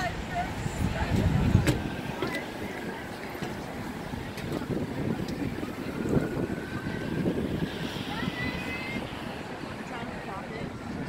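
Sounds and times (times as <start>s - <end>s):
faint crowd voices: 0.0s - 11.0s
wind buffeting microphone: 0.0s - 11.0s.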